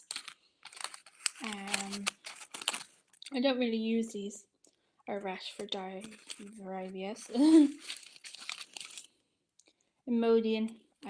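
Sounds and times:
crinkling medicine packaging: 0.0s - 3.4s, 4.7s - 9.8s.

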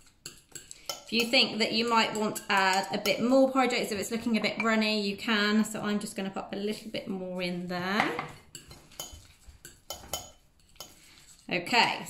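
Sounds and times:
metal spoon clinking in ceramic bowl: 0.2s - 3.3s, 8.1s - 11.0s.

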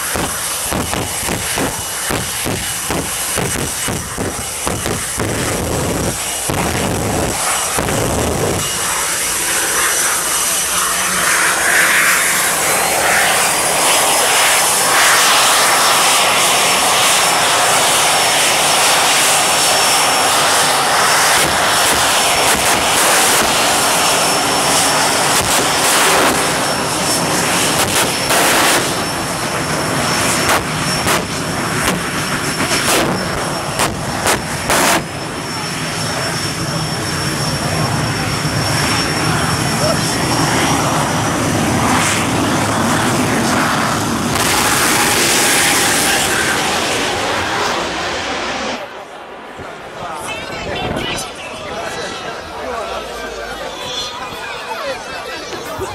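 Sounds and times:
turbine engine whine: 0.0s - 55.9s.

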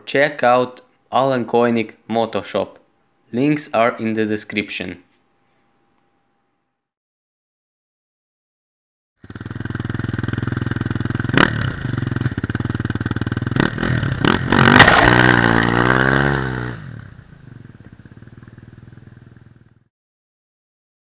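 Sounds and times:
dirt bike engine revving: 9.2s - 19.4s
sharp engine cracks: 14.5s - 15.9s.

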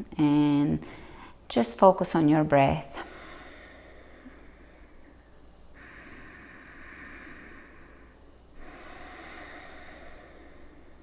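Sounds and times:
woman breathing slowly: 0.8s - 1.5s, 2.8s - 11.0s.

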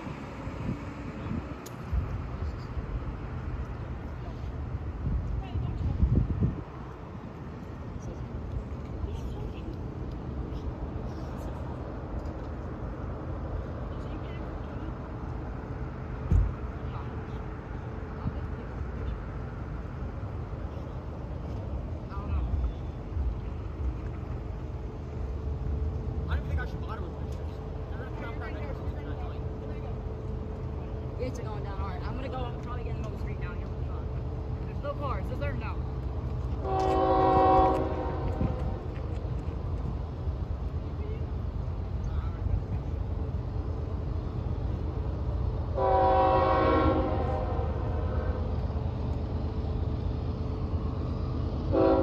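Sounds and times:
steady low rumble: 0.0s - 45.8s.

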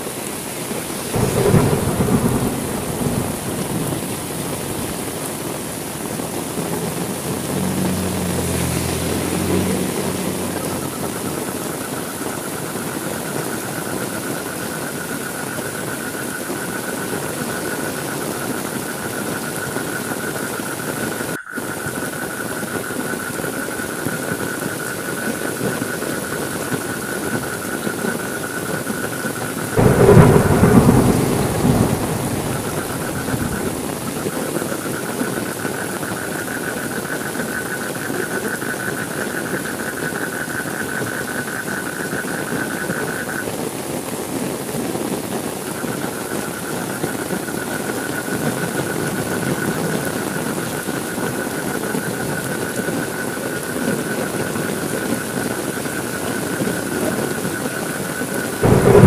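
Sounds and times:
heavy rain: 0.0s - 59.0s
thunder clap rumbling: 1.1s - 11.6s, 29.7s - 35.0s, 58.6s - 59.0s.

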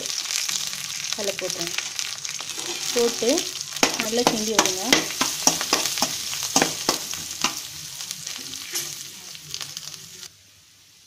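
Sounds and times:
spices sizzling in hot oil: 0.0s - 11.0s.

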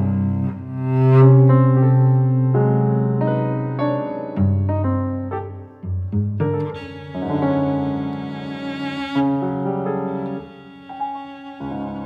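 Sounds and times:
cello: 0.0s - 12.0s
piano: 0.0s - 12.0s.

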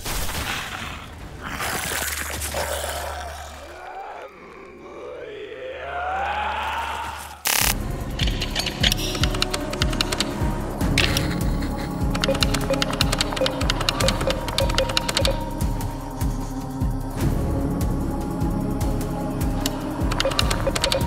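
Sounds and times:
monster growl: 0.6s - 7.7s
dramatic orchestral score: 0.6s - 21.0s
glitchy electronic music: 7.5s - 16.4s, 19.6s - 21.0s.

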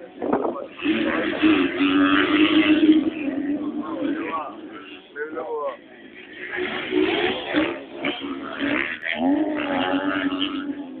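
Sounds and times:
motorcycle engines revving: 0.0s - 11.0s.

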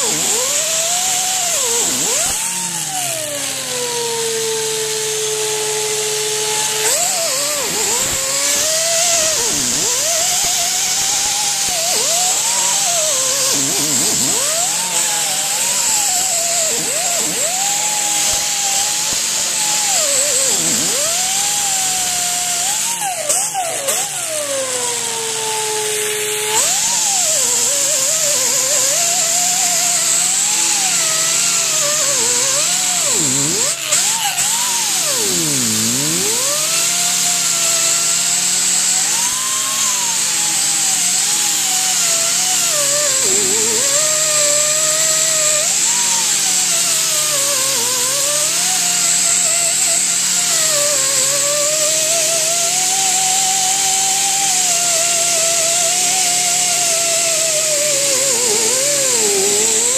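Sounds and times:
power tool motor whine: 0.0s - 59.9s
wire wheel scratching metal: 31.8s - 34.4s, 35.1s - 36.5s.

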